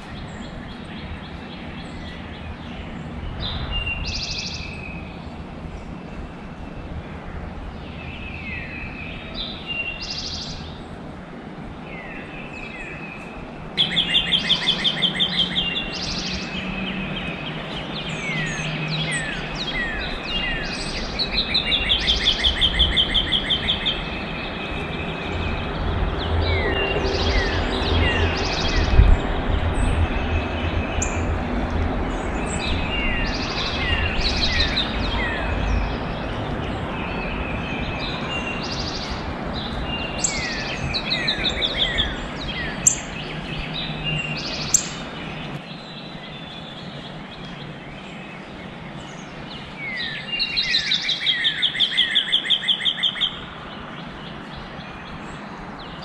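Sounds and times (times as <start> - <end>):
songbirds singing and chirping: 0.0 - 56.0.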